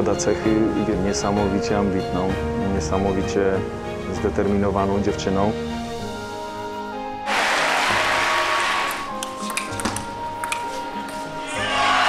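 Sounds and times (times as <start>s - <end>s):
background music with held chords: 0.0s - 12.0s
crowd cheering and applauding: 7.3s - 9.1s, 11.4s - 12.0s
table tennis ball clicks: 8.9s - 10.8s.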